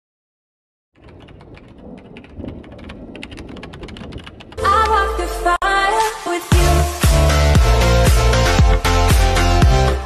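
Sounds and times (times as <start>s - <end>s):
computer keyboard typing: 1.0s - 5.2s.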